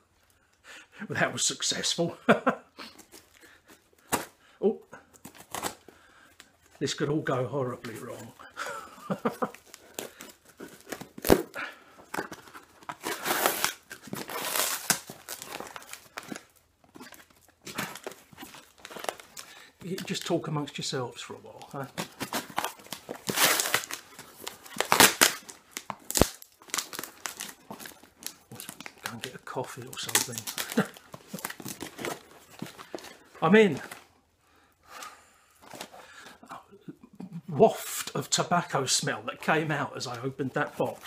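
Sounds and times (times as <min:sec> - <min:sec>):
crinkling and rustling packaging: 0:02.8 - 0:34.3, 0:35.0 - 0:36.4, 0:37.7 - 0:41.0.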